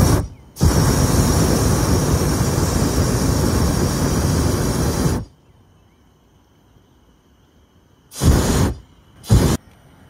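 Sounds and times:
propane burner firing: 0.0s - 5.3s, 8.1s - 9.6s.

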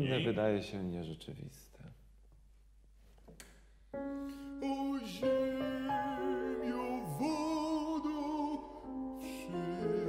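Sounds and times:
grand piano chords: 4.0s - 10.0s.

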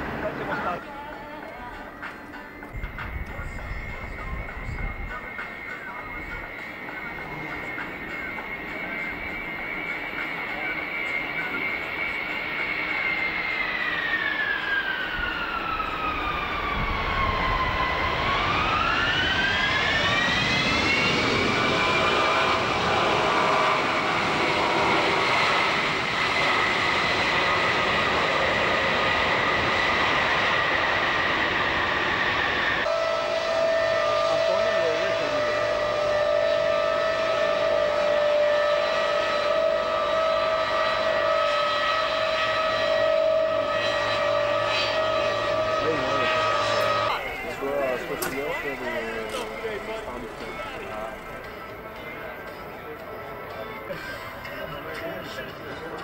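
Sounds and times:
jet engines spooling up: 0.0s - 56.0s
steady jet engine whine: 0.0s - 56.0s.

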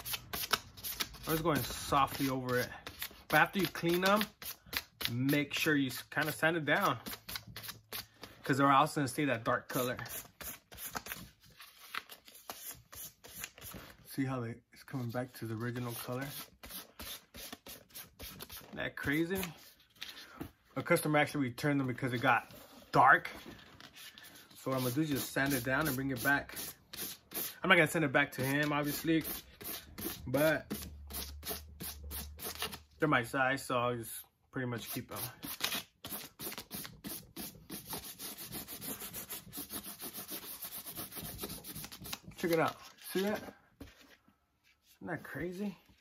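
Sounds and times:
sandpaper scratching on leather: 24.7s - 27.6s, 36.1s - 42.2s.

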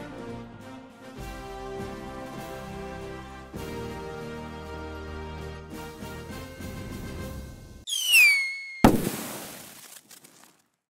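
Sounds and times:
descending firework whistle: 7.9s - 9.0s
sharp firework bang: 7.9s - 9.4s.

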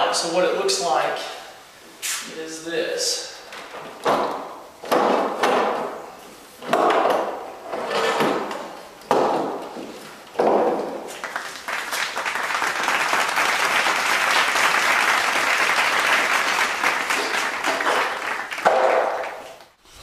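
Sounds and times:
wooden piano parts scraping and clattering: 6.6s - 10.8s.

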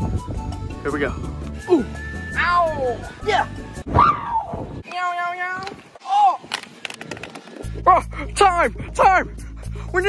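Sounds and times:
background music: 0.0s - 4.4s, 7.6s - 10.0s.

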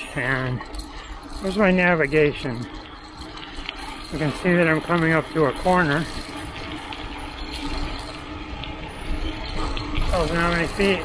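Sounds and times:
bicycle tyre road noise: 0.0s - 11.0s.

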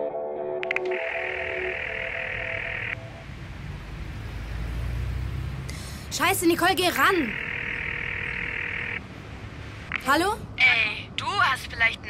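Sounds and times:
guitar music: 0.0s - 3.4s
telephone ringing: 0.6s - 3.1s, 7.0s - 9.0s.

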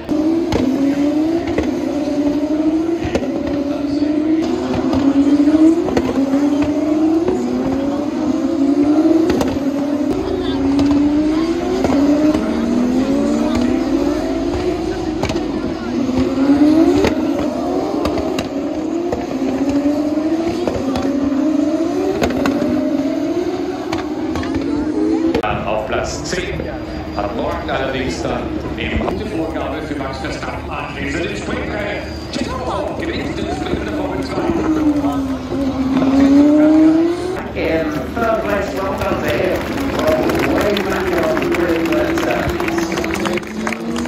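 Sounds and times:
racing car engines accelerating past: 0.0s - 25.6s, 26.6s - 44.0s.

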